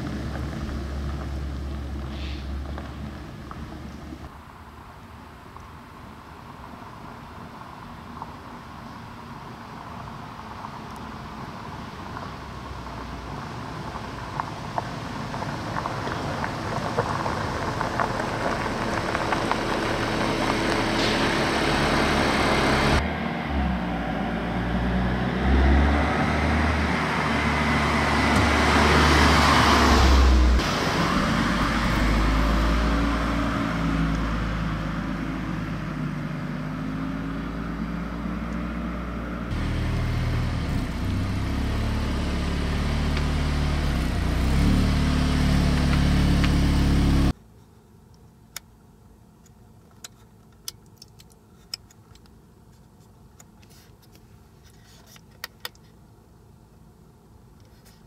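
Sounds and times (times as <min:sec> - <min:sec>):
car engine accelerating past: 0:17.1 - 0:47.4.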